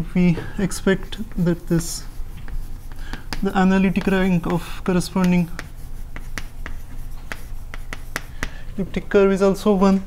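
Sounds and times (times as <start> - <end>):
chalk tapping and scratching on blackboard: 0.6 - 8.8.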